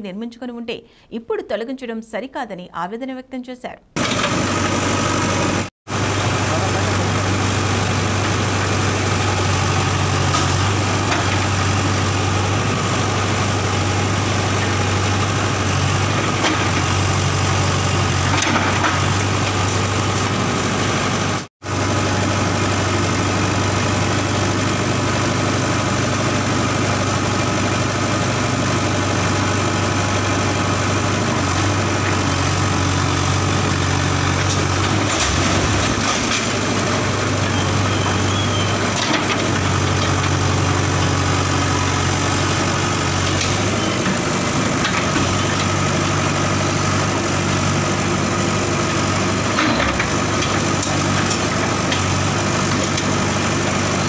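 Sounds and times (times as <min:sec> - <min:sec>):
diesel engine running: 0:04.0 - 0:54.0.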